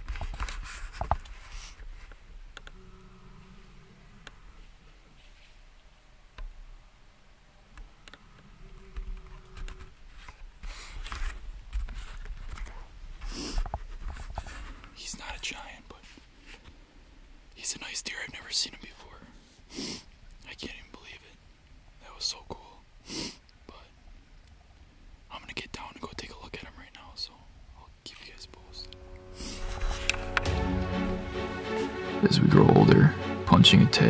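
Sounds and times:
man whispering: 14.9 - 16.2, 17.6 - 19.5, 20.4 - 21.4, 22.0 - 22.9, 23.6 - 24.0, 25.3 - 29.6
music with held tones: 28.7 - 34.0.

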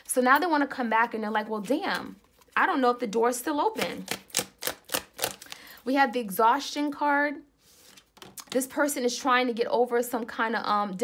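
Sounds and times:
cards being shuffled: 3.8 - 5.6, 7.7 - 8.6.

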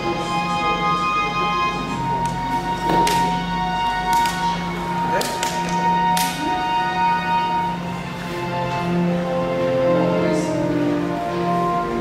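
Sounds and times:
held music notes over loudspeakers: 0.0 - 12.0.

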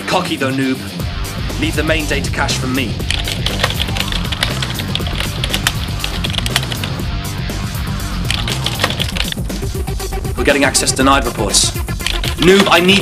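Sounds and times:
background music with low beat: 0.8 - 13.0
computer keyboard typing clicks: 3.1 - 7.0, 8.3 - 9.4, 12.0 - 13.0.

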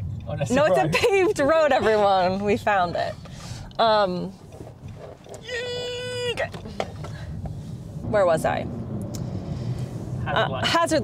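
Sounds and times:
car road rumble: 0.0 - 11.0.

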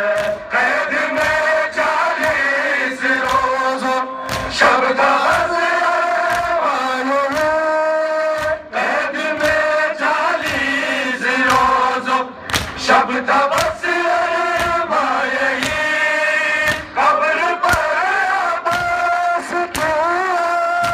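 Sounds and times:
crowd beating chests rhythmically: 0.0 - 20.9
men chanting a lament: 0.0 - 20.9.

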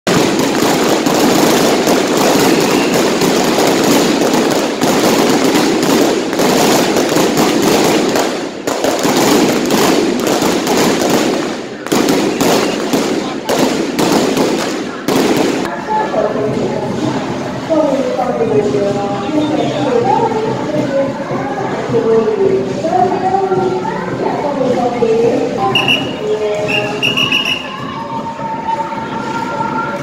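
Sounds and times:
firecrackers crackling: 0.0 - 30.0.

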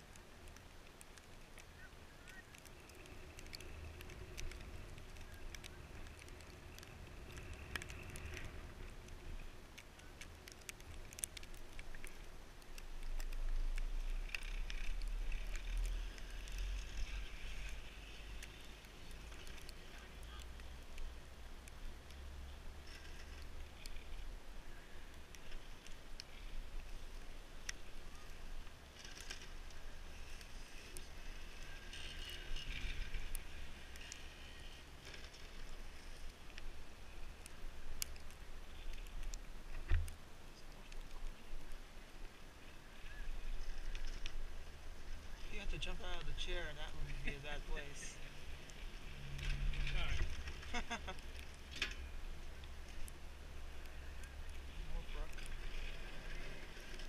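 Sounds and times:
chairlift clicks and creaks: 0.0 - 21.0, 22.8 - 24.3, 25.2 - 36.7, 47.0 - 53.2.

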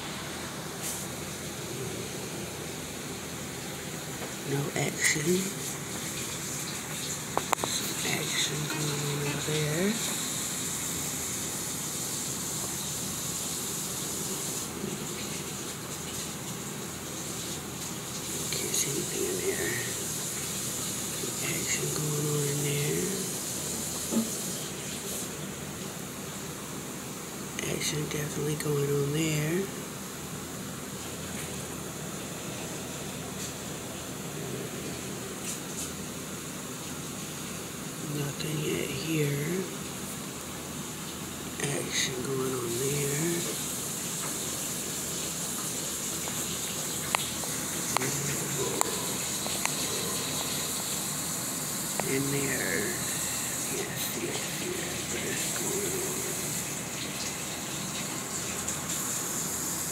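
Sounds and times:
water circulating hiss: 0.0 - 59.9.

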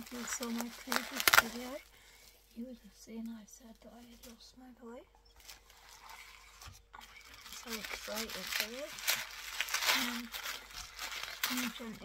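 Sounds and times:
plastic gift wrap crinkling: 0.0 - 2.6, 5.4 - 12.0.

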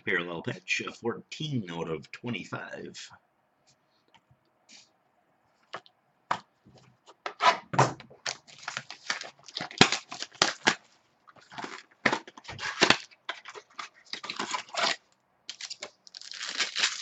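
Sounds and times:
cardboard rustling: 8.2 - 17.0
plastic wrapper crinkling and tearing: 8.2 - 17.0.

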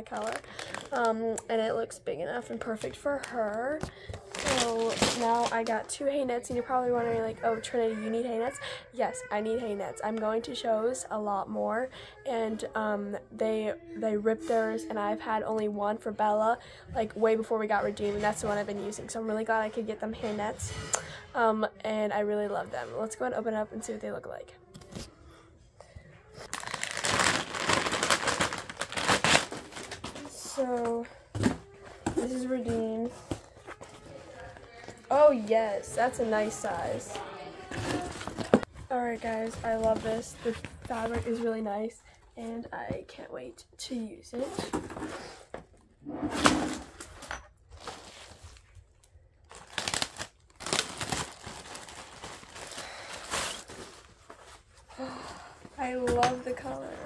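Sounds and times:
plastic packaging crinkling: 0.0 - 1.2, 4.2 - 5.9, 26.4 - 30.6, 47.8 - 54.7.

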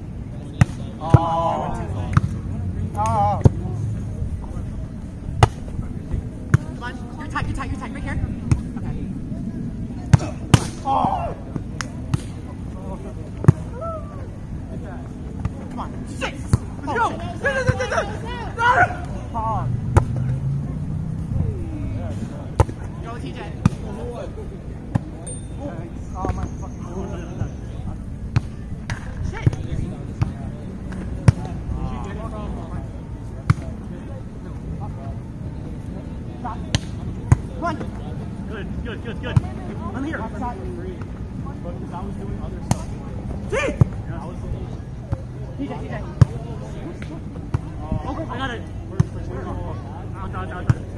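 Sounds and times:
faint players calling: 0.2 - 50.9
faint shouting: 1.0 - 2.0, 10.2 - 11.5, 13.5 - 14.5, 16.1 - 19.7, 43.5 - 43.9
volleyball slaps: 2.0 - 3.6, 5.4 - 5.6, 10.1 - 10.9, 19.9 - 20.4, 42.6 - 43.0.

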